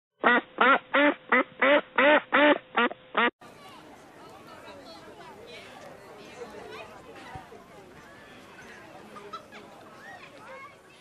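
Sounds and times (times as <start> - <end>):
duck quacking: 0.2 - 3.3
murmur of outdoor crowd: 3.4 - 11.0.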